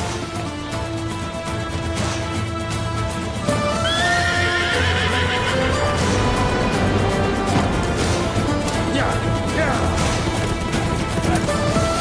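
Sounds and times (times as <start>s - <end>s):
dramatic background music: 0.0s - 12.0s
hooves clattering: 3.0s - 12.0s
horse whinnying: 3.5s - 6.3s.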